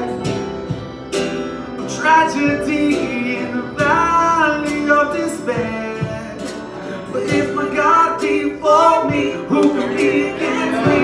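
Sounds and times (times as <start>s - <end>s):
strummed acoustic guitar: 0.0s - 11.0s
man and woman singing: 2.0s - 11.0s.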